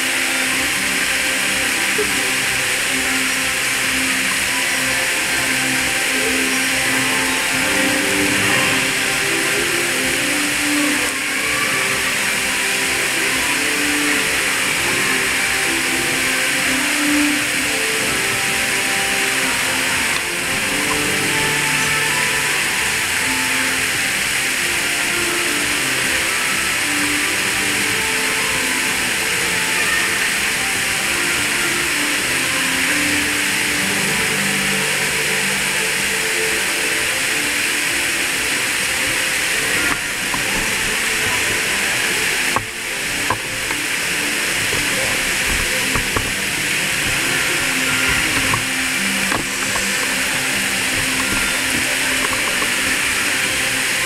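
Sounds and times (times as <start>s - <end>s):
loud steady hiss: 0.0s - 54.0s
soft melodic music over loudspeakers: 0.0s - 54.0s.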